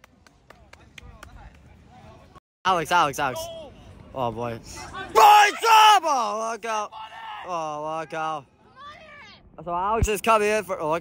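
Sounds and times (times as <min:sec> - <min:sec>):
distant players shouting: 0:04.8 - 0:09.4.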